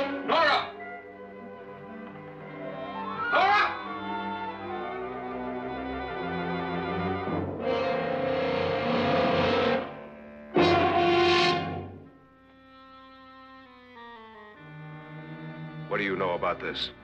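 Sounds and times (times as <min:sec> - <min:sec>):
low orchestral chords: 0:00.0 - 0:12.4, 0:13.6 - 0:17.0
loud brass blasts: 0:10.6 - 0:12.0.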